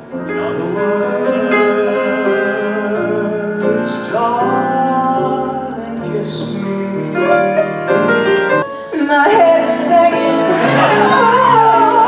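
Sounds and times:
man singing: 0.0s - 8.1s
instrumental accompaniment: 0.0s - 12.0s.

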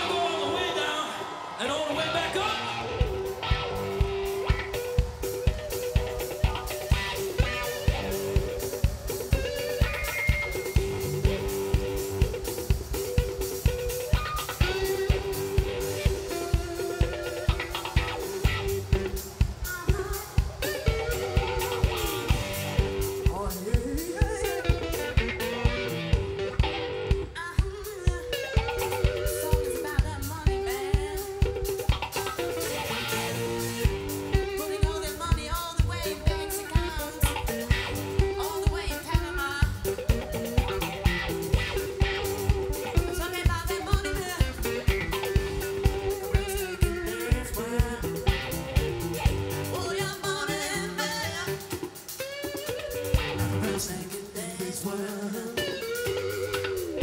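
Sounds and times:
bass guitar: 1.4s - 57.0s
drum kit beat: 2.1s - 57.0s
electric guitar bending notes: 2.6s - 23.5s, 24.1s - 27.4s, 28.2s - 54.1s, 55.6s - 57.0s.

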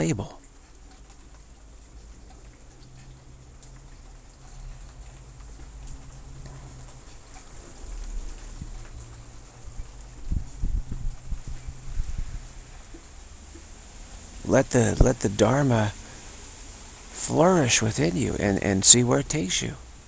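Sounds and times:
drops ticking: 0.0s - 16.3s
light rain falling: 0.0s - 20.0s
low steady hum: 0.0s - 20.0s.

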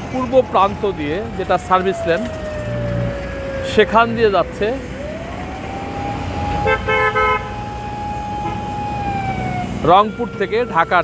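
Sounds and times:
road traffic: 0.0s - 11.0s
long siren-like horn tone: 1.8s - 11.0s.

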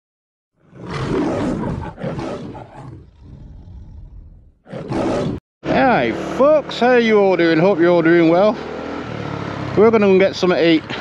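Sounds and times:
roar sound effect: 0.6s - 5.4s.

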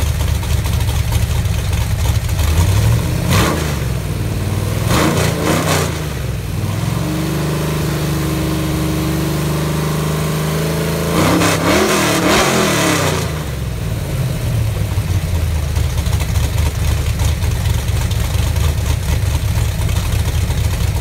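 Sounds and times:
engine revving: 2.4s - 15.3s.

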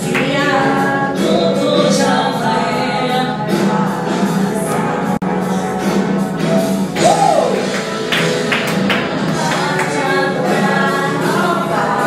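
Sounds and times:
voices singing worship song: 0.0s - 12.0s.

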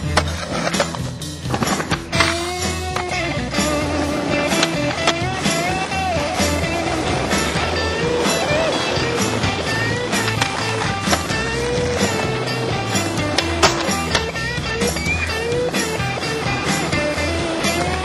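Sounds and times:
skateboard clacking: 0.0s - 18.0s
skateboard wheels rolling on asphalt: 0.0s - 18.0s.

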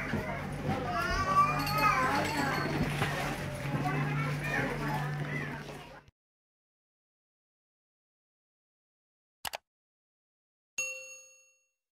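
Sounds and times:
bell-like ding: 10.8s - 11.8s.

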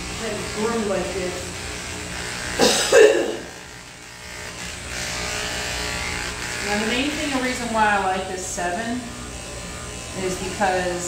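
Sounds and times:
electric clippers buzzing: 0.0s - 11.0s.

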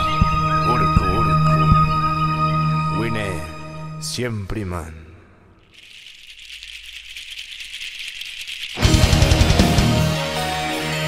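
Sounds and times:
percussion rattle shaking: 5.6s - 10.8s.

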